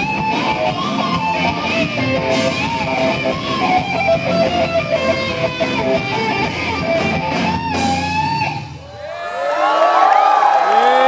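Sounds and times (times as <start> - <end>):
electric guitar music: 0.0 - 8.8
crowd cheering and whooping: 8.8 - 11.0.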